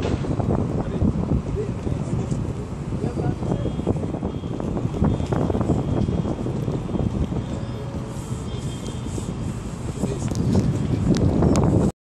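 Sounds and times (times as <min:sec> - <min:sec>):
distant city traffic hum: 0:00.0 - 0:11.9
wind buffeting microphone: 0:00.0 - 0:11.9.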